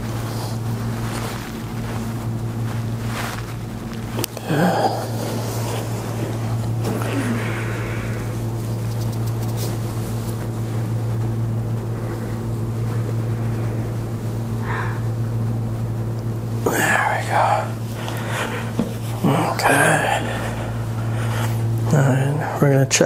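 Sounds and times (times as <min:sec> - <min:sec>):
low mechanical hum: 0:00.0 - 0:23.0.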